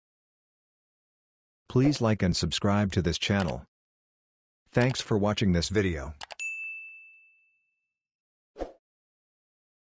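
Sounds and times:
mouse clicks: 3.4s - 3.6s
bright bell ding: 6.3s - 7.9s.

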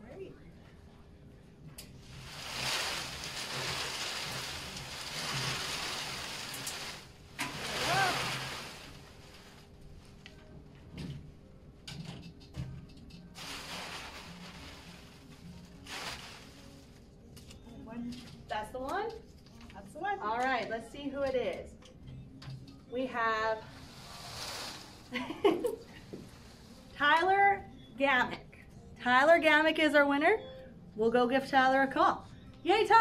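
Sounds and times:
paper tickets tumbling in metal drum: 2.1s - 9.5s, 13.4s - 16.6s
paper rustling: 2.1s - 9.8s, 13.4s - 16.8s.

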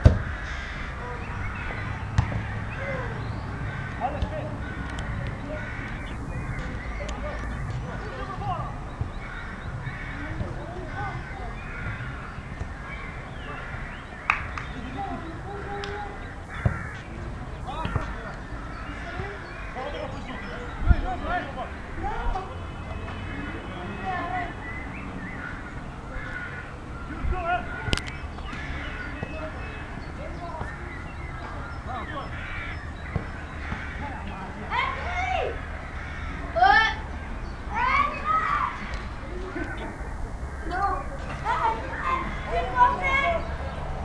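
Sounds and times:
distant players shouting: 0.0s - 44.0s.

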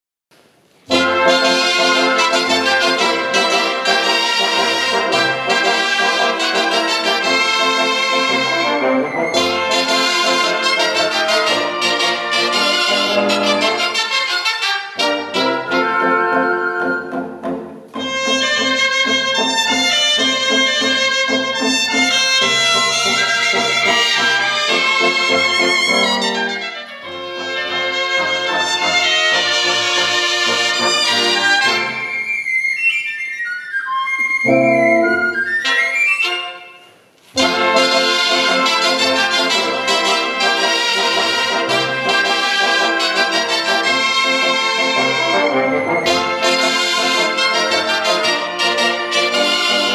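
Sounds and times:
reed and brass band playing: 0.9s - 32.2s, 34.4s - 49.9s.

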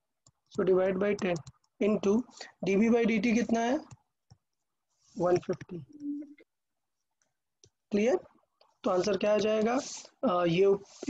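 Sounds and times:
stylus tapping tablet screen: 0.1s - 4.6s.

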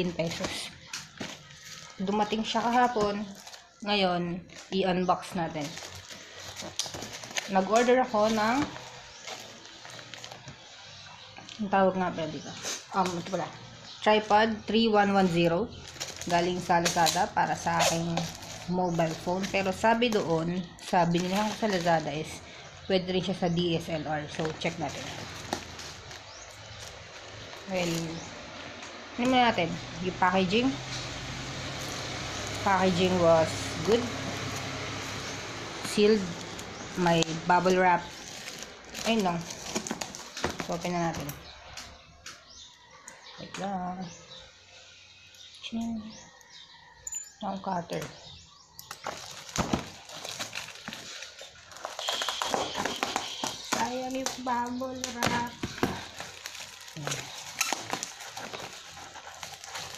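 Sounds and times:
bubble wrap rustling: 0.0s - 11.3s, 15.0s - 22.5s, 23.8s - 29.5s, 30.8s - 41.3s, 48.8s - 59.9s
plastic packaging crinkling: 0.0s - 11.3s, 15.7s - 22.5s, 24.2s - 28.6s, 31.6s - 41.2s, 48.8s - 59.9s.

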